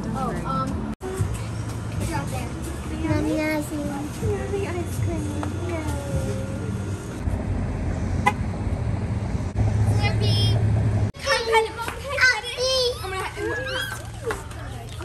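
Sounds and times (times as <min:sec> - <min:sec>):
children talking: 0:00.0 - 0:06.9, 0:11.2 - 0:15.0
vehicle engine hum: 0:00.0 - 0:13.3.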